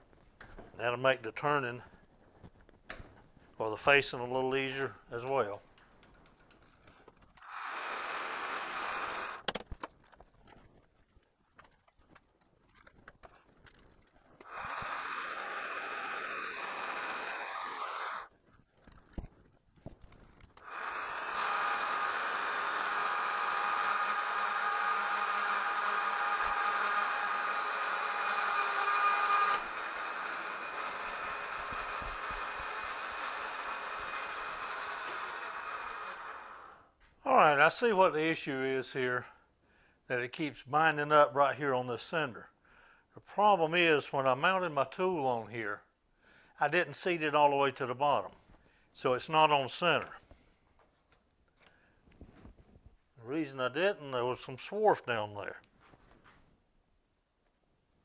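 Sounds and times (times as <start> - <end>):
metal lathe motor and gear whine: 7.4 - 9.4, 14.4 - 18.3, 20.6 - 36.8.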